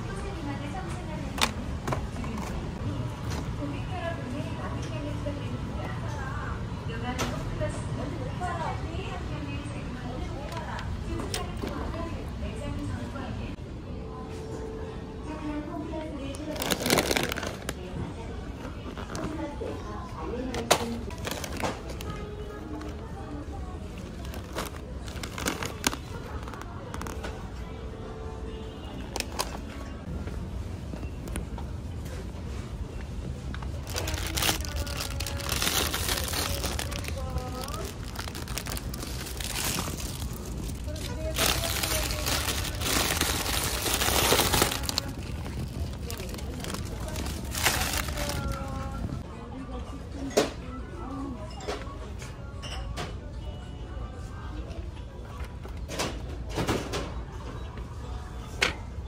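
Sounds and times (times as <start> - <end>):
plastic packaging crinkling: 16.4 - 17.8, 21.1 - 22.2, 24.0 - 27.2, 33.7 - 49.0
voices: 33.5 - 51.4.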